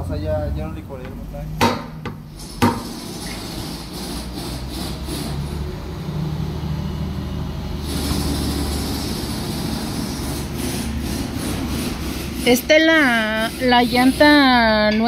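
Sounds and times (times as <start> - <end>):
compressed air hissing: 2.2 - 5.6, 7.8 - 14.6.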